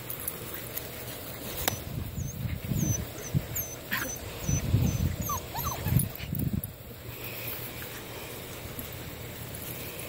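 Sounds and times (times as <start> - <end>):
puppy whines: 1.7 - 6.2.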